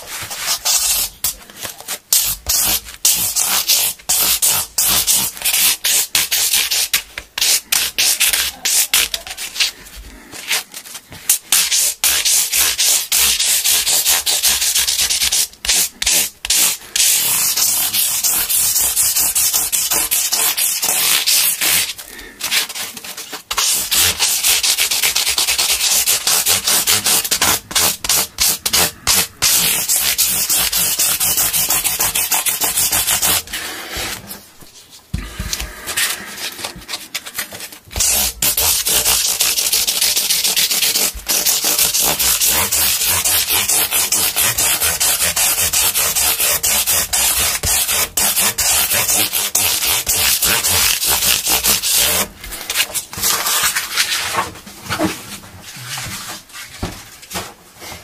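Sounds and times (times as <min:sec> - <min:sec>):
sanding sponge scratching: 0:00.0 - 0:01.3, 0:01.9 - 0:09.7, 0:11.3 - 0:34.3, 0:38.0 - 0:54.4.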